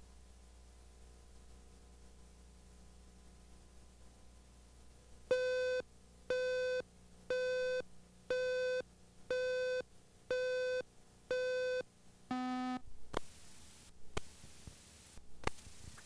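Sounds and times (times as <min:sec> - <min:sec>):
electronic countdown beeps: 0:05.3 - 0:12.8.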